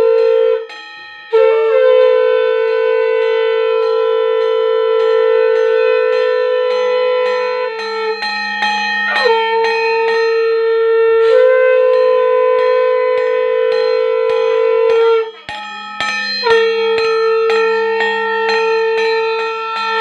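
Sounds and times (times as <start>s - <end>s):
bell struck steadily: 0.0s - 20.0s
conch shells blown: 0.0s - 20.0s.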